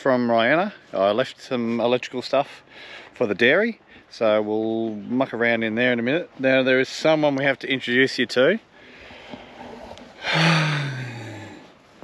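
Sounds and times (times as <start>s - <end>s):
person exhaling breathily: 8.8s - 11.8s.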